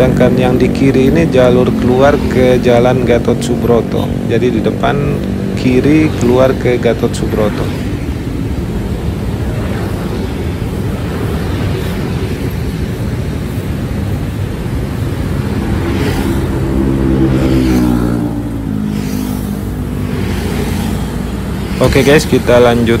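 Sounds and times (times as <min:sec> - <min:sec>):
passing vehicle engine: 0:00.0 - 0:23.0
road traffic rumble: 0:00.0 - 0:23.0.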